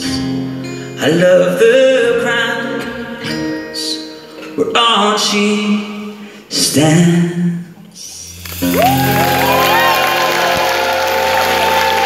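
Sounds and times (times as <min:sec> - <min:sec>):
applause: 0:08.4 - 0:12.0
live band holding chord: 0:08.4 - 0:12.0
audience cheering and whistling: 0:08.6 - 0:12.0.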